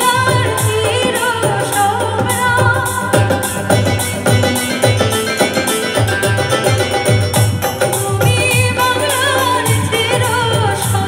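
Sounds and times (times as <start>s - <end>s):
keyboard: 0.0s - 11.0s
tabla drum strokes: 0.0s - 11.0s.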